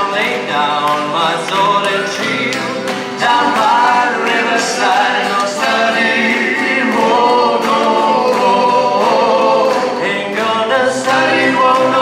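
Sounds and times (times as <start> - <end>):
voices singing in harmony: 0.0 - 12.0.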